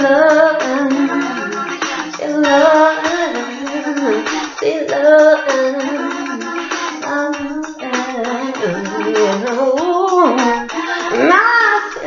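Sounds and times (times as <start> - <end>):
rhythmic backing track: 0.0 - 12.0
woman singing wordless notes: 0.0 - 12.0.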